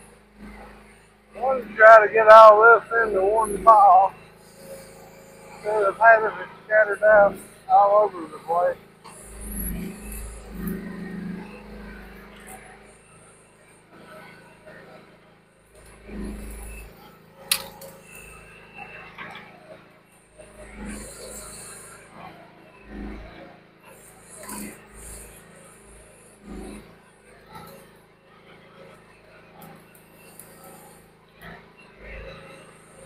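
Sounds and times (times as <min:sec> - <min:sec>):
mini excavator running: 0:00.0 - 0:33.0.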